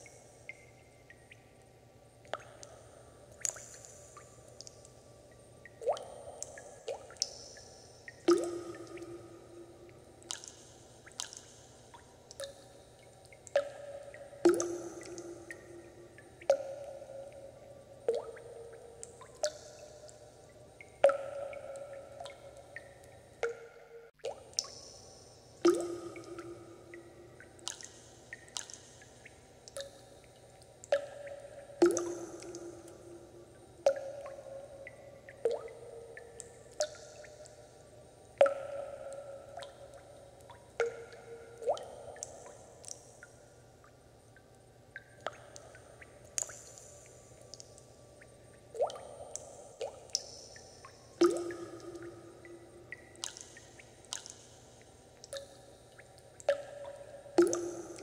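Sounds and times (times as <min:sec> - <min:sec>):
water drops plinking into water: 0:00.0 - 0:58.0.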